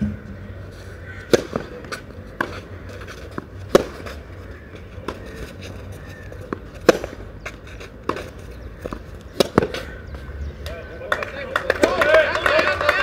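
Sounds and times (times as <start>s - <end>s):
tennis ball bouncing: 1.2s - 4.2s, 5.0s - 10.2s
rackets hitting tennis ball: 1.2s - 10.8s.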